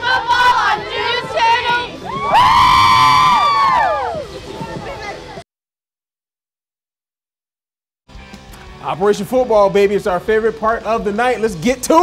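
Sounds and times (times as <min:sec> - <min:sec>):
cheerleaders screaming and cheering: 0:00.0 - 0:05.4.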